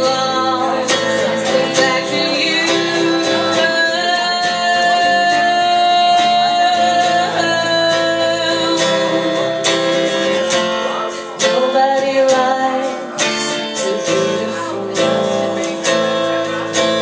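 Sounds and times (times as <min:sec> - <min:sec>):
acoustic guitar strumming: 0:00.0 - 0:17.0
woman singing: 0:00.0 - 0:17.0.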